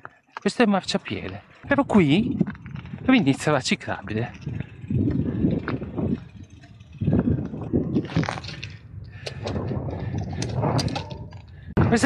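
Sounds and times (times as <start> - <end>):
bike rolling over rough asphalt: 0.0 - 11.7
bike clicks and rattles: 0.0 - 12.0
wind rumbling on microphone: 1.0 - 12.0.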